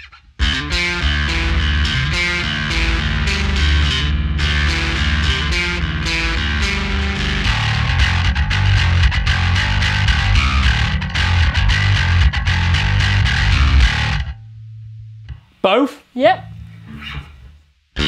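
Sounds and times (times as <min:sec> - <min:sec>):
distorted electric bass riff: 0:00.0 - 0:15.5, 0:16.4 - 0:18.0
low amp hum: 0:00.4 - 0:15.5, 0:16.4 - 0:18.0.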